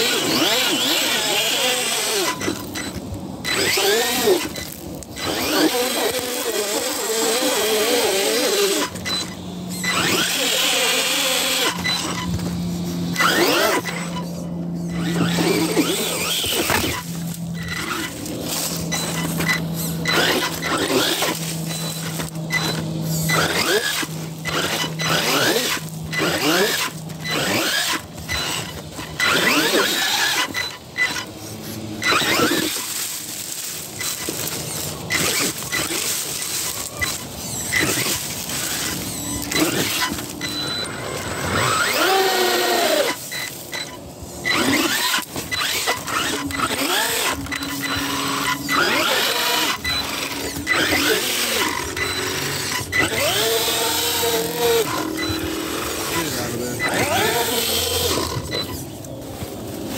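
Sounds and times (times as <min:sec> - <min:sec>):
electric motor whining: 0:00.0 - 0:59.9.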